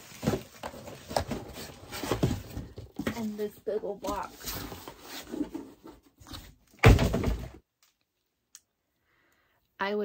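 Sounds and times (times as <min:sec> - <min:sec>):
cardboard rustling: 0:00.0 - 0:07.6
cardboard box bumps: 0:00.1 - 0:03.3.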